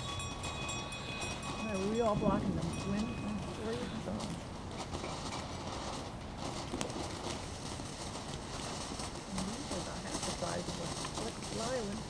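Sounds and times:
firework fountain hissing: 1.8s - 12.0s
sharp firework crackles: 2.2s - 12.0s.

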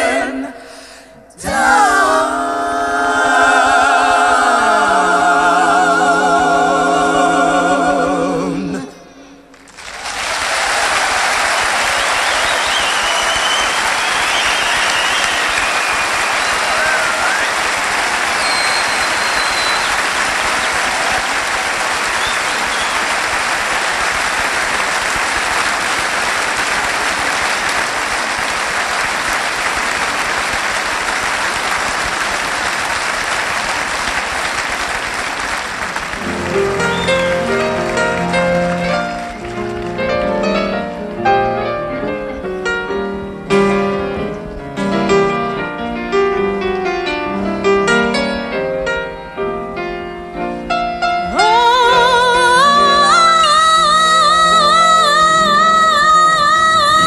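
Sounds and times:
audience applauding: 9.5s - 40.9s
whistles from audience: 10.7s - 21.4s, 22.0s - 23.3s, 36.6s - 37.6s
piano playing: 35.9s - 57.0s.

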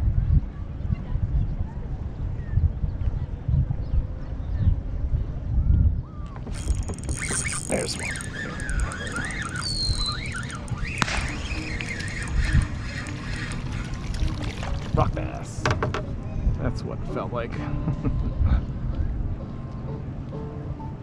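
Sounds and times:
high wavering squeal: 6.3s - 14.8s
spinning reel cranking: 6.4s - 14.8s
fish splashing in water: 6.6s - 15.1s.

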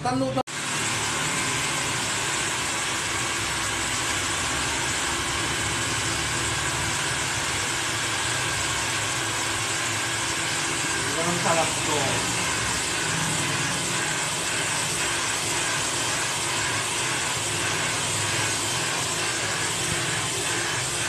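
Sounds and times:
hair dryer blowing: 0.5s - 21.0s.

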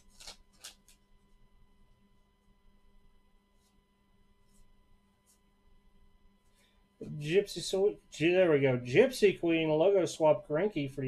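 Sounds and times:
card wrapper rustling: 0.0s - 1.0s
faint steady hum: 0.0s - 11.0s.

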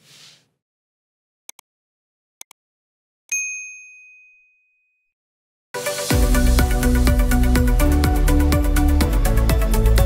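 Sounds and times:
bright bell chime: 3.3s - 4.9s.

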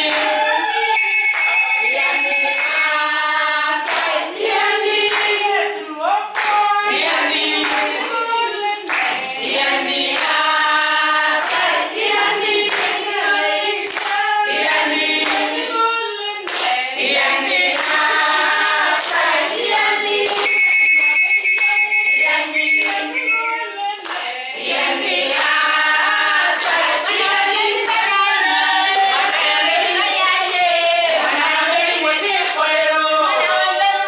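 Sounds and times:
women singing together: 0.0s - 34.0s
hands clapping in time: 1.0s - 2.8s, 20.2s - 24.3s.

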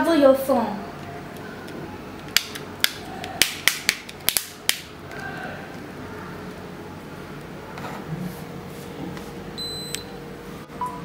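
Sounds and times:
faint steady hum: 0.0s - 11.0s
short high beep: 9.6s - 10.0s.

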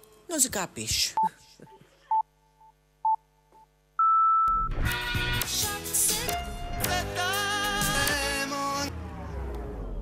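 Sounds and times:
music with singing: 4.8s - 9.0s.

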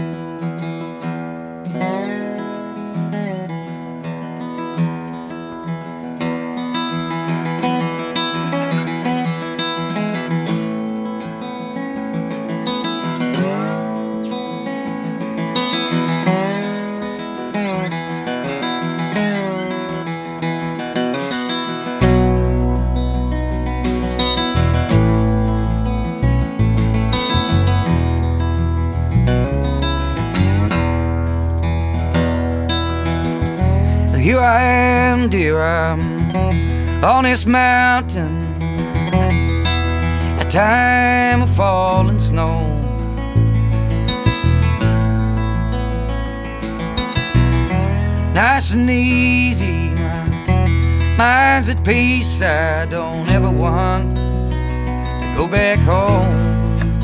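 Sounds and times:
slide guitar blues: 0.0s - 57.0s
electric bass guitar: 6.5s - 57.0s.

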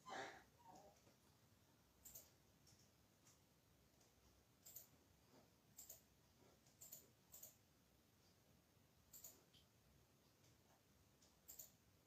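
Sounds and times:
faint high-pitched clicks: 9.0s - 11.9s.

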